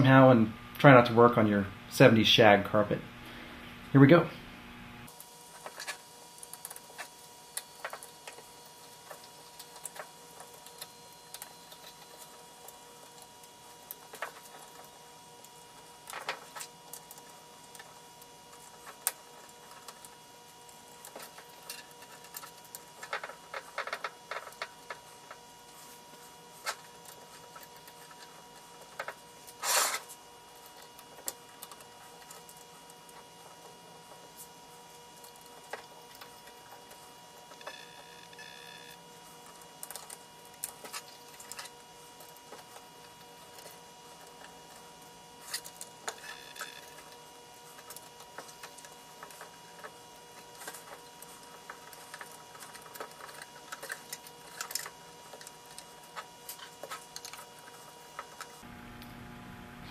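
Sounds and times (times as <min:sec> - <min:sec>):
faint steady hum: 0:00.0 - 0:59.9.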